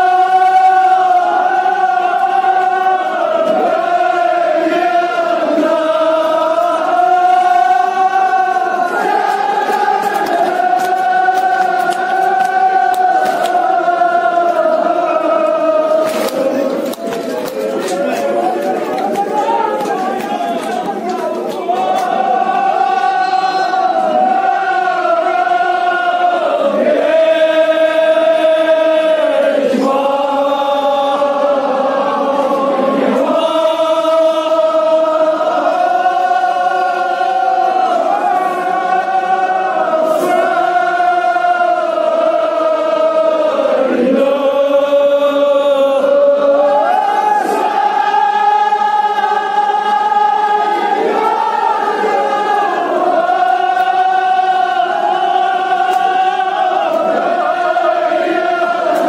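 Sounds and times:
men chanting in unison: 0:00.0 - 0:59.0.

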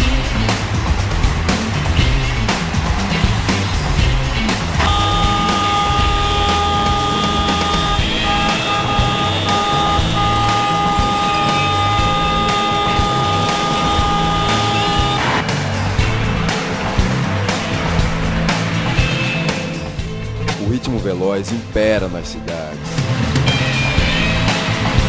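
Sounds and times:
city traffic: 0:00.0 - 0:20.6
background music with low beat: 0:00.0 - 0:25.0
steady high tone: 0:04.8 - 0:15.4.

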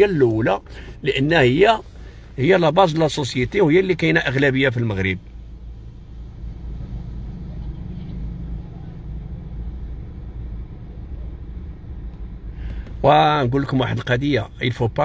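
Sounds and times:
car engine idling: 0:00.0 - 0:06.8, 0:09.5 - 0:15.0.

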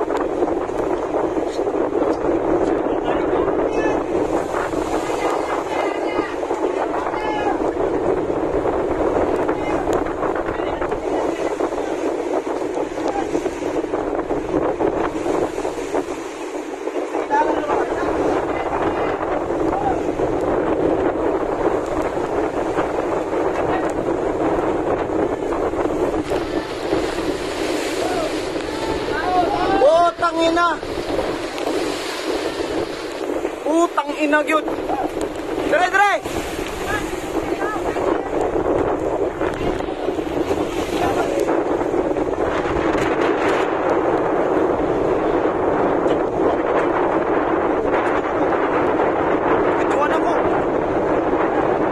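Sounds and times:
rough sea slapping boat hulls: 0:00.0 - 0:51.9
storm waves breaking: 0:00.0 - 0:51.9
wind buffeting microphone: 0:00.0 - 0:51.9.

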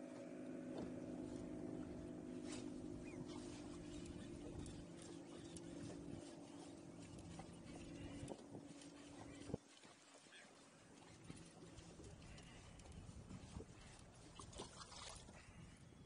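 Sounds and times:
electric trolling motor humming: 0:00.0 - 0:09.6.

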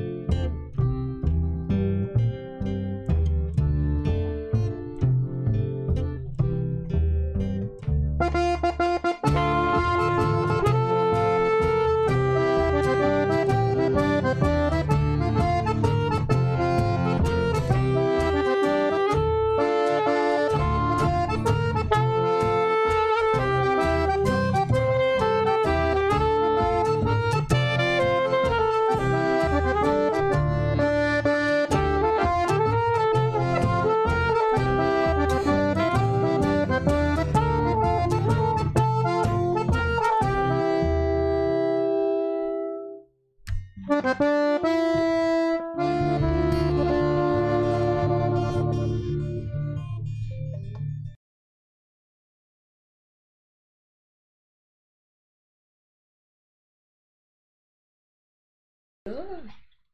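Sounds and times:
accordion music: 0:07.7 - 0:43.0, 0:43.8 - 0:49.9.

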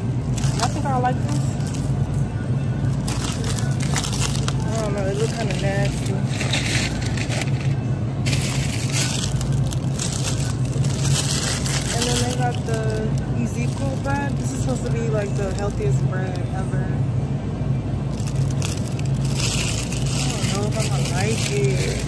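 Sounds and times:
freezer cases humming: 0:00.0 - 0:22.0
plastic bag crinkling: 0:00.2 - 0:02.2, 0:02.9 - 0:16.5, 0:18.1 - 0:22.0.

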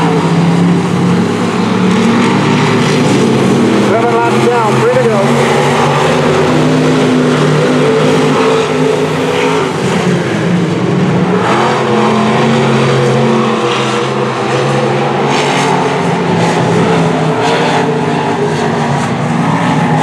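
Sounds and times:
racing car engines: 0:00.0 - 0:20.0.

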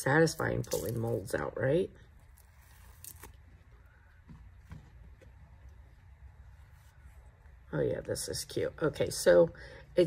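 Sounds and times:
low steady hum: 0:00.0 - 0:10.0
silicone mold peeling: 0:02.0 - 0:07.7.

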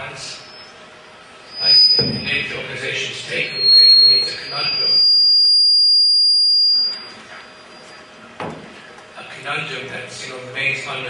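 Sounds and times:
microphone feedback whistle: 0:00.4 - 0:00.8, 0:01.4 - 0:08.1.

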